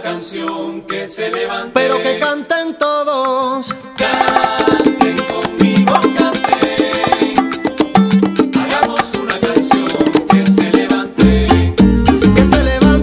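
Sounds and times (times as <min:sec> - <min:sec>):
salsa band music: 0:04.0 - 0:13.0.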